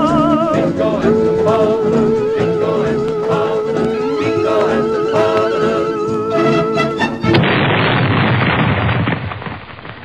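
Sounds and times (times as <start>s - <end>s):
explosion-like boom: 7.3s - 10.0s.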